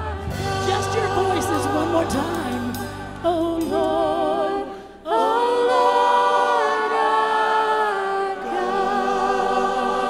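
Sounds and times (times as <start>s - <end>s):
choir singing a hymn: 0.0s - 10.0s.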